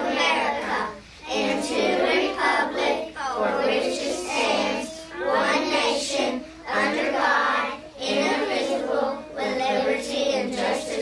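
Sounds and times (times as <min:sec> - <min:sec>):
children reciting in unison: 0:00.0 - 0:11.0.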